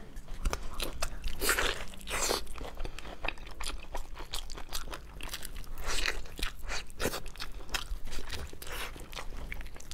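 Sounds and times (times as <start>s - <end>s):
chewing with smacking clicks: 0.2s - 9.9s.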